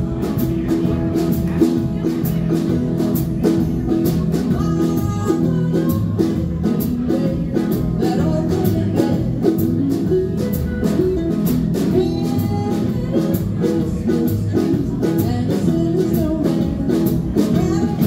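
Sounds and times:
drum beat: 0:00.0 - 0:18.0
live band playing blues: 0:00.0 - 0:18.0.

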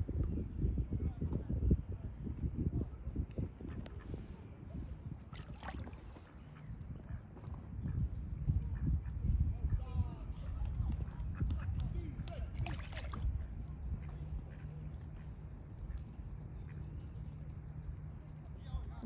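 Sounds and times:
wind buffeting microphone: 0:00.0 - 0:19.0.

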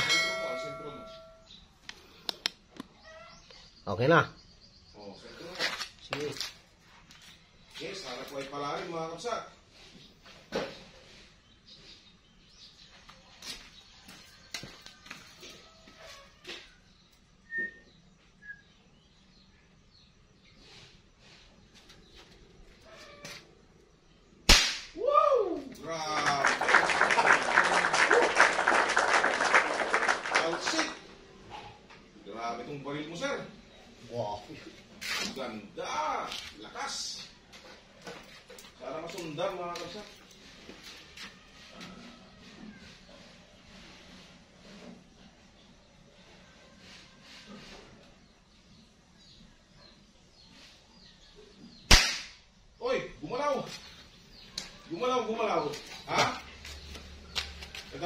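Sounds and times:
airgun shot: 0:24.5 - 0:25.0, 0:51.9 - 0:52.5
people cheering and clapping: 0:25.0 - 0:31.1.

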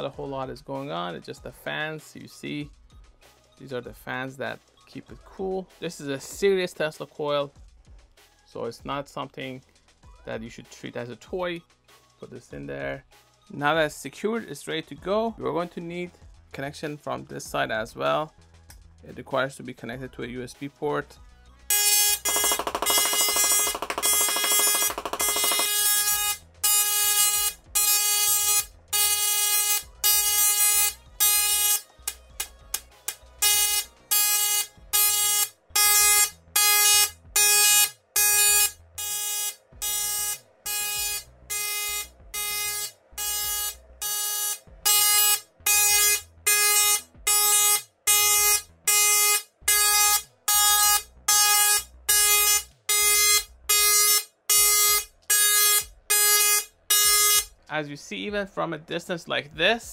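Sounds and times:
tesla coil buzzing notes: 0:21.7 - 0:57.5.

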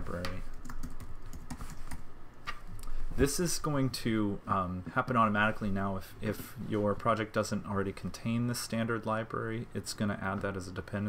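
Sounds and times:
computer keyboard typing: 0:00.1 - 0:02.0.

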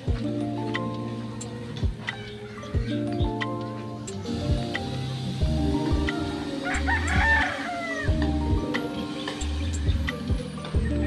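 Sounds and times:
background music with steady beat: 0:00.0 - 0:11.0
rooster crowing: 0:02.1 - 0:02.9, 0:06.1 - 0:08.5.

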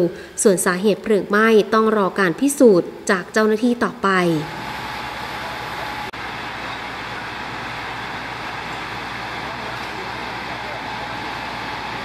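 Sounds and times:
low engine rumble: 0:04.4 - 0:12.0
rushing water from fire hoses: 0:05.3 - 0:12.0.

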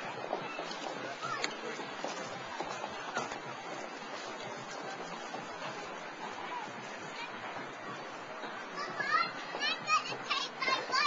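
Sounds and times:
children calling out and chattering: 0:00.0 - 0:11.0
outdoor background hiss: 0:00.0 - 0:11.0.

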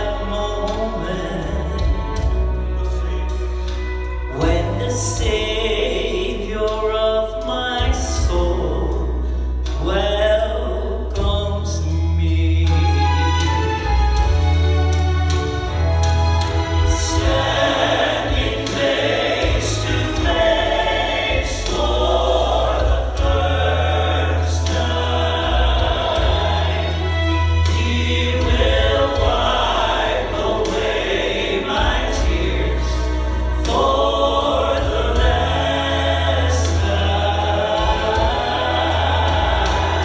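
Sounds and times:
music with strong bass line: 0:00.0 - 0:40.0
people singing together: 0:16.4 - 0:40.0.

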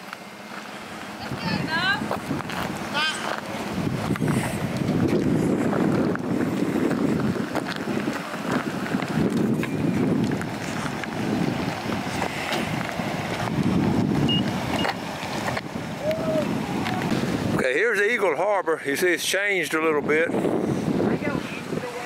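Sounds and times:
wind buffeting microphone: 0:00.8 - 0:17.9, 0:19.5 - 0:22.0.

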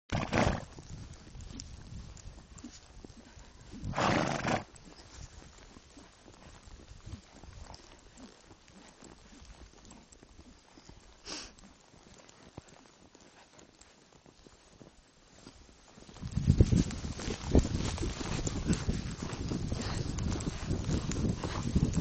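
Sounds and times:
hooves in snow: 0:00.1 - 0:22.0.

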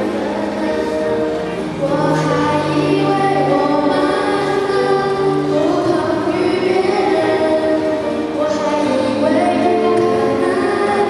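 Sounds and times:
girl singing into a microphone: 0:00.0 - 0:11.0
karaoke backing track: 0:00.0 - 0:11.0.

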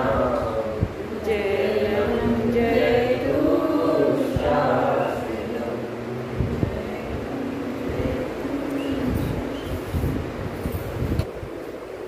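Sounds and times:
man chanting a prayer: 0:00.0 - 0:06.1.

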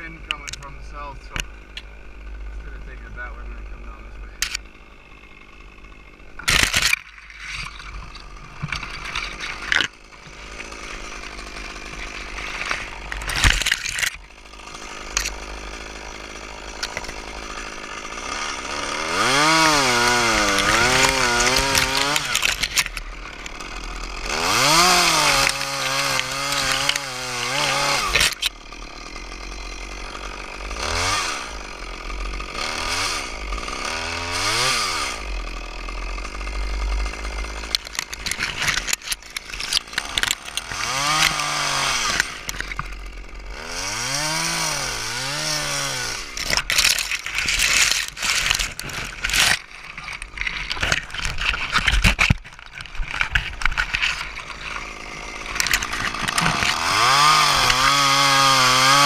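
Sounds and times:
chainsaw revving and cutting wood: 0:00.0 - 0:59.0.

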